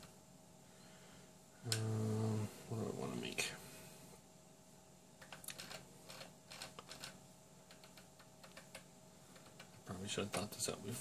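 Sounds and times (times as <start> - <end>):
computer mouse clicks: 5.2 - 9.8.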